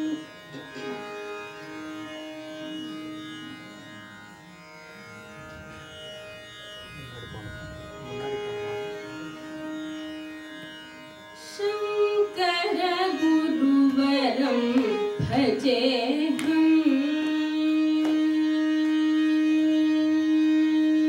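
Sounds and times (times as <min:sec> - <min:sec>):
tanpura drone: 0:00.0 - 0:21.0
soft held notes: 0:06.8 - 0:10.8.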